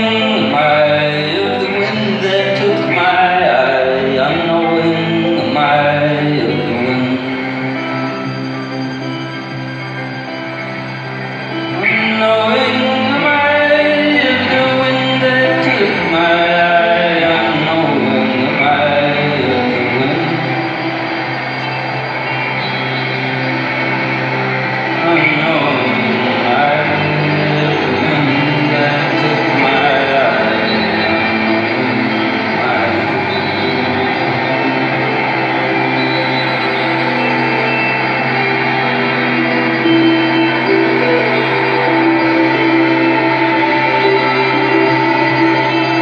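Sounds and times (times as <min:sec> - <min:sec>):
live band instrumental: 0:00.0 - 0:46.0.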